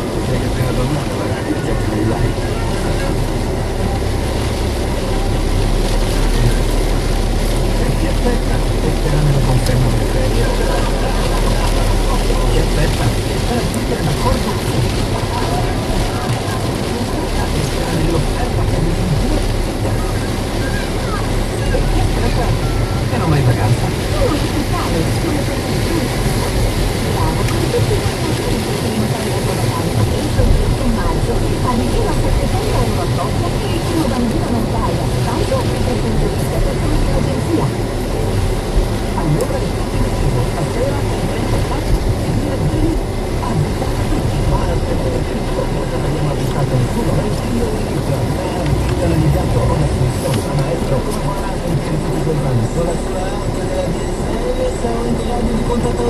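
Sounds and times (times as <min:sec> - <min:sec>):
car engine and road noise: 0:00.0 - 0:56.0
voices on car radio: 0:00.0 - 0:56.0.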